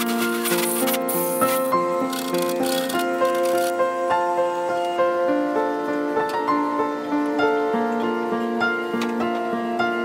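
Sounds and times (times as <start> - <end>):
hissing percussion: 0.0 - 5.2
instrumental music held notes: 0.0 - 10.0.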